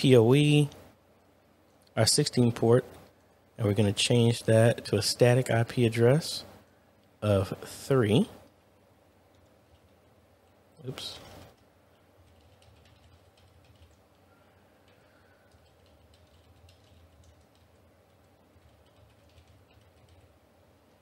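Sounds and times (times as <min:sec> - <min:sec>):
typing on a keyboard: 0:09.3 - 0:10.0, 0:11.4 - 0:20.4.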